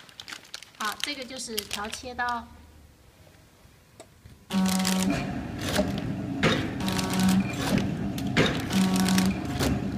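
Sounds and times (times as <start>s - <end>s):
packing machine hum: 4.5s - 9.9s.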